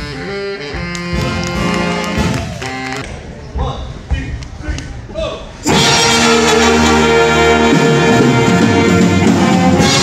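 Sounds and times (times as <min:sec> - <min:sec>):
jazz band with horns: 0:00.0 - 0:03.2, 0:05.6 - 0:10.0.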